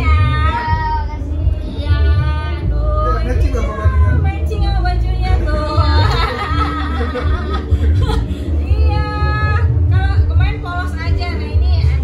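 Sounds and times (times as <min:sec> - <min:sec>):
music with deep bass: 0:00.0 - 0:12.0.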